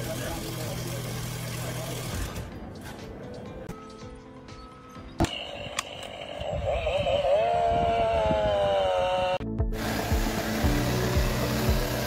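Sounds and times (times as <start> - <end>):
power drill boring into steel: 5.2 - 12.0.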